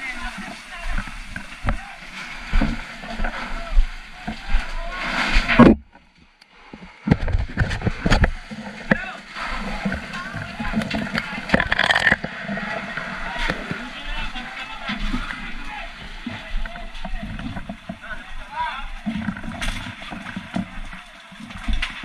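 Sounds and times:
water splashing: 0:00.0 - 0:22.0.

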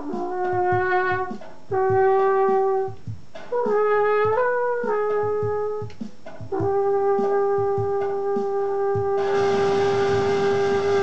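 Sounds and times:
brass horn long note: 0:06.6 - 0:11.0.

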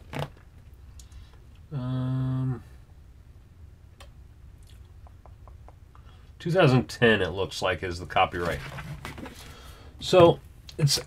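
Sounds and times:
man humming hmm: 0:01.7 - 0:02.7
faint mouth clicks: 0:04.6 - 0:06.2.

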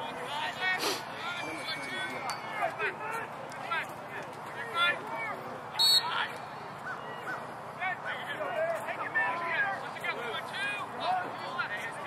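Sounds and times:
spectators talking and calling out: 0:00.0 - 0:12.0.

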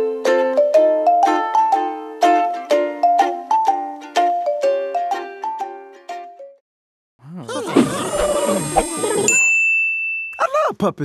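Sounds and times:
bell-like ding chime: 0:09.3 - 0:10.4.

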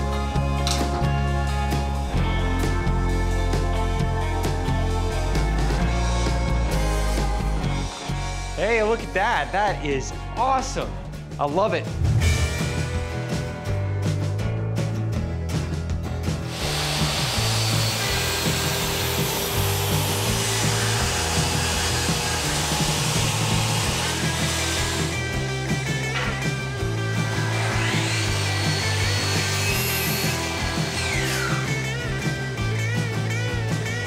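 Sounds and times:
rock music: 0:00.0 - 0:34.0
table saw cutting wood: 0:04.5 - 0:08.6, 0:16.4 - 0:34.0.

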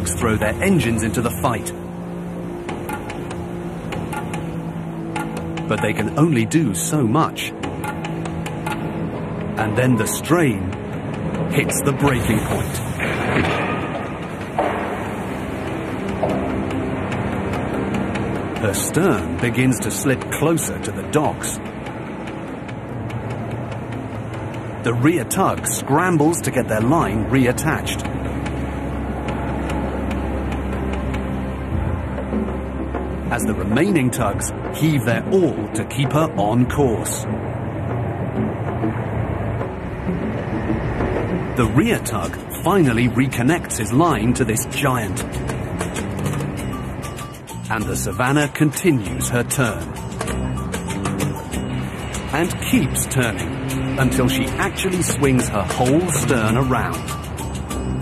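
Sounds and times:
tugboat engines drone: 0:00.0 - 0:58.0
quiet ticking beat: 0:02.6 - 0:06.4, 0:07.5 - 0:09.6, 0:48.9 - 0:58.0
low drone: 0:49.0 - 0:58.0.

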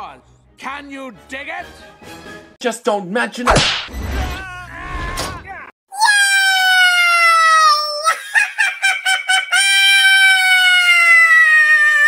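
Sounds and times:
cartoon voice squealing: 0:05.9 - 0:08.2
staccato cartoon laughter: 0:08.1 - 0:10.4.

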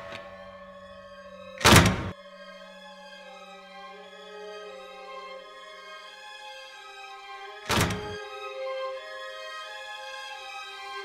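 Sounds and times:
loud thump: 0:01.6 - 0:02.2, 0:07.7 - 0:08.2.

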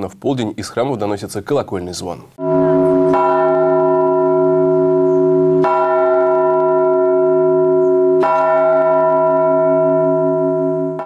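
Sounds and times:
large church bell ringing: 0:02.4 - 0:11.0.

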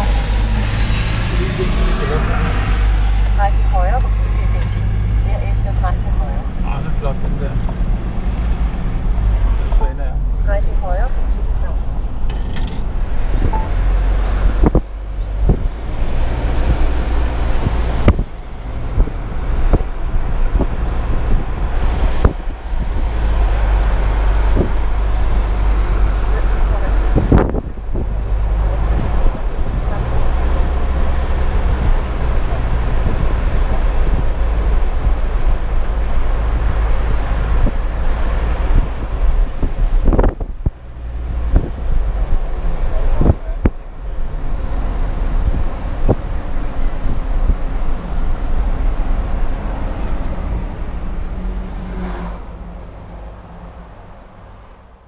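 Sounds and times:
engine and tyre rumble: 0:00.0 - 0:55.0.

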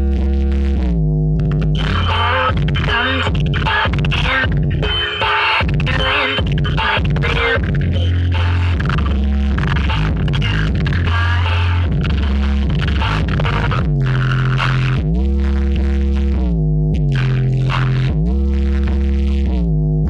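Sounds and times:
loud electronic dance music: 0:00.0 - 0:19.8
deep held bass notes: 0:00.0 - 0:20.0.

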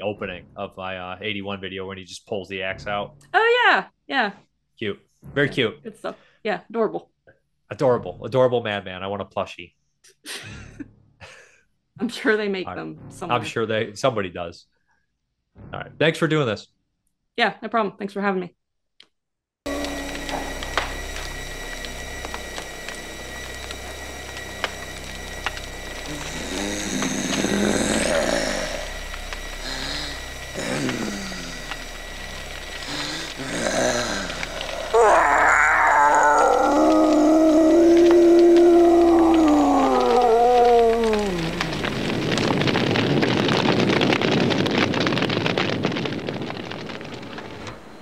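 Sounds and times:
drawn-out howling cry: 0:19.7 - 0:29.0, 0:32.5 - 0:42.7
low steady hum: 0:19.7 - 0:42.7
eerie cries: 0:19.7 - 0:43.5
fire rushing: 0:19.7 - 0:48.0.

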